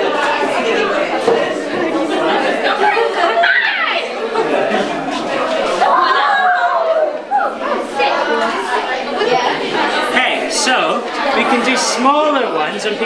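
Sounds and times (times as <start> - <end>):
students excited chatter: 0.0 - 13.0.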